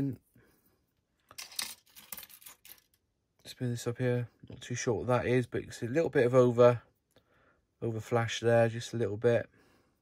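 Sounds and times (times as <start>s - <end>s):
plastic parts clattering: 1.3s - 3.0s.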